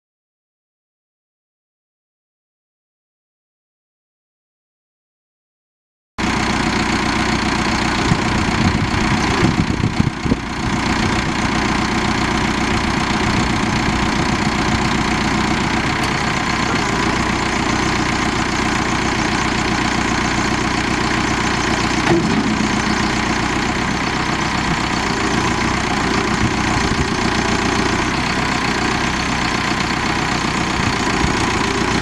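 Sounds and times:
diesel engine idling: 6.2 - 32.0.

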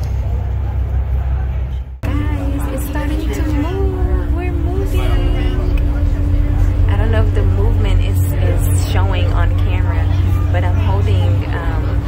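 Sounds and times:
boat engine rumbling: 0.0 - 12.0
indistinct voices: 0.0 - 12.0.

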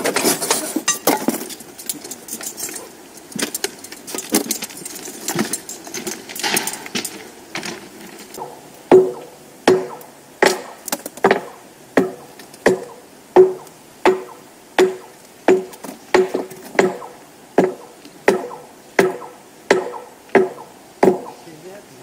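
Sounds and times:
steel hand tools clinking: 0.1 - 7.3.

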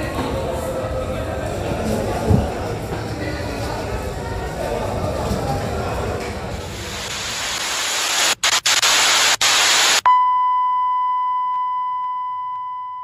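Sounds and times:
television static hiss: 6.5 - 10.1
steady test-tone beep: 10.0 - 13.0.

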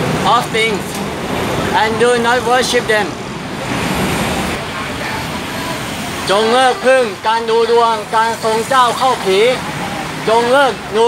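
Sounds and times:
road traffic roar: 0.0 - 11.0.

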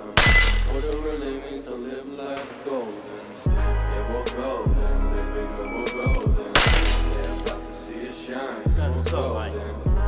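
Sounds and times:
steel plate ringing: 0.0 - 1.2, 6.6 - 7.4
hip-hop music: 0.0 - 10.0.

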